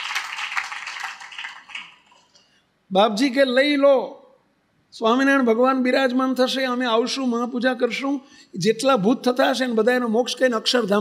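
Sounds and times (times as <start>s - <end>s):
audience applauding: 0.0s - 2.3s.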